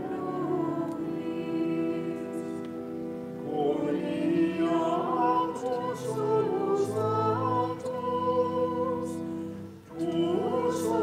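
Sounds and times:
person singing: 0:00.0 - 0:11.0
sustained organ chords: 0:00.0 - 0:11.0.

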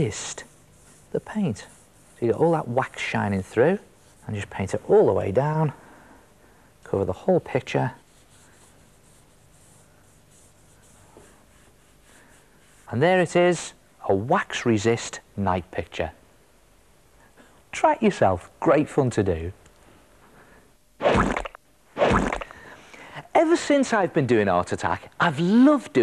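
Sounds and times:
paintbrush swishing on paper: 0:00.0 - 0:05.0, 0:07.5 - 0:13.4.

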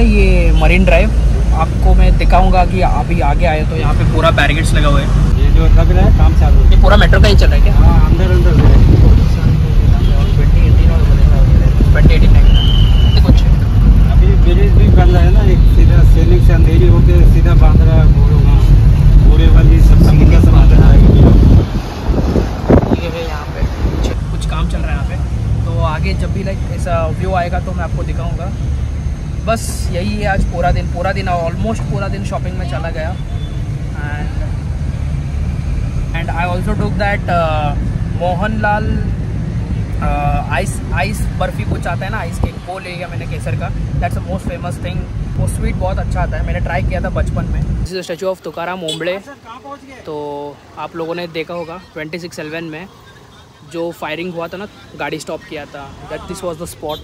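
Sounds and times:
engine and road rumble: 0:00.0 - 0:57.0.

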